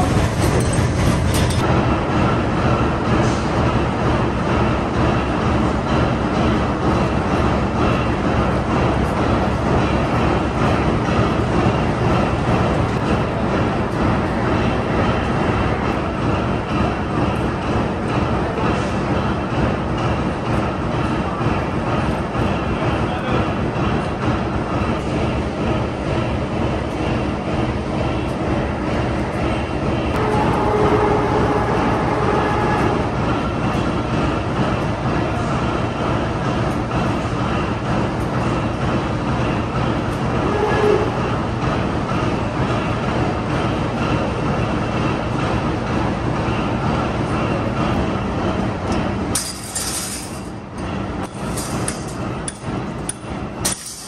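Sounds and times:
crane mechanical rumble and rattle: 0.0 - 54.0.

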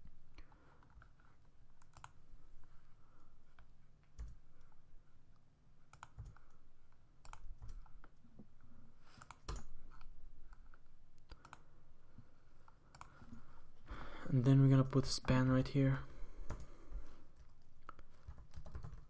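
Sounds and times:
computer keyboard keystrokes: 1.8 - 2.2, 5.9 - 6.6, 7.2 - 8.0, 9.2 - 10.1, 11.2 - 11.6, 12.9 - 13.2, 17.4 - 19.0.

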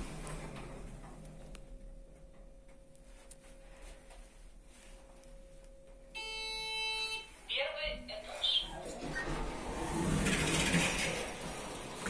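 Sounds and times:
faint steady hum: 0.0 - 8.9
lift arrival beep: 5.9 - 7.4.

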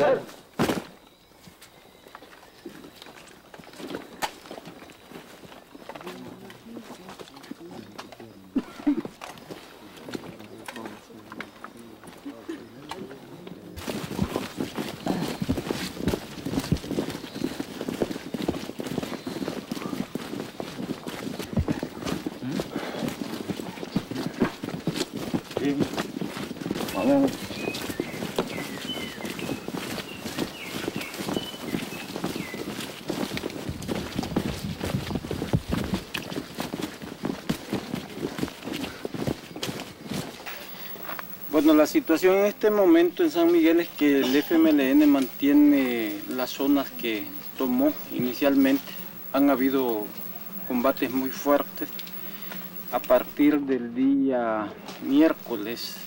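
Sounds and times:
knocks and crunches in dry undergrowth: 0.4 - 53.6, 54.4 - 56.0
faint voices: 5.4 - 34.9, 37.6 - 53.7.

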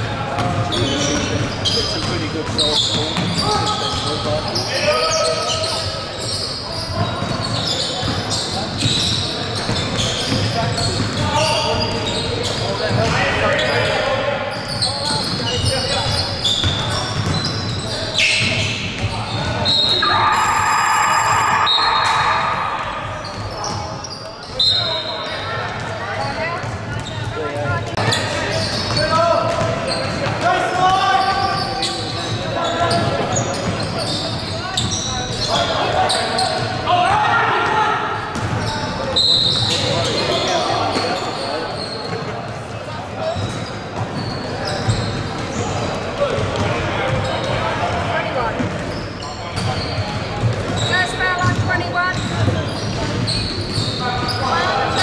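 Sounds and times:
players and spectators calling out: 0.0 - 55.0
basketball bouncing on court: 0.2 - 4.6, 6.8 - 13.2, 14.6 - 24.6, 25.3 - 35.6, 37.6 - 41.2, 41.9 - 54.4.

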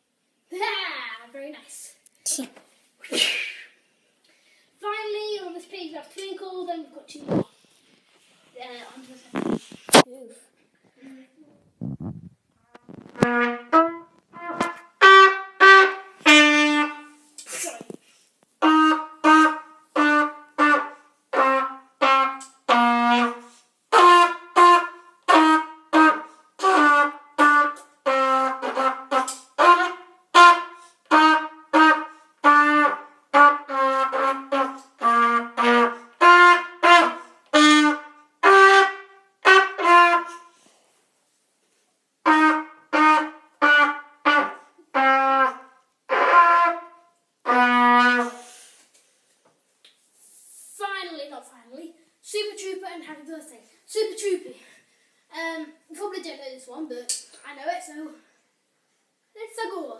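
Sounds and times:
cornet playing slow tune: 12.7 - 17.3, 18.6 - 40.7, 42.2 - 48.8.

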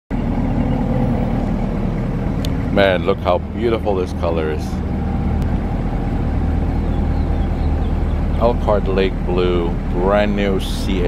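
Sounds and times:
vehicle engine idling: 0.1 - 11.0.

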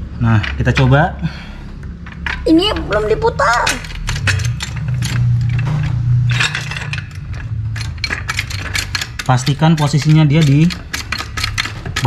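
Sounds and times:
steady low hum: 0.0 - 12.0
trolley jack clicking and scraping: 2.1 - 12.0.

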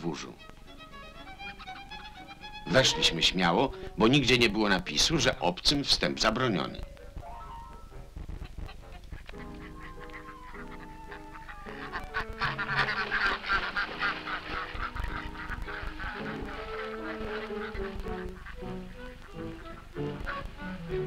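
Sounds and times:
background music of held notes: 0.0 - 21.0
geese honking and cackling: 0.0 - 21.0.

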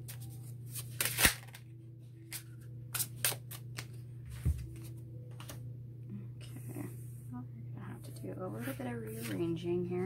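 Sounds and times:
steady low hum: 0.0 - 10.0
cards clicking and snapping: 0.8 - 1.6, 2.3 - 4.0.

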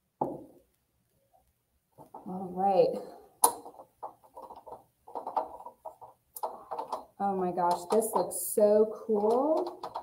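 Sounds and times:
paint roller sticky crackle: 3.5 - 10.0.

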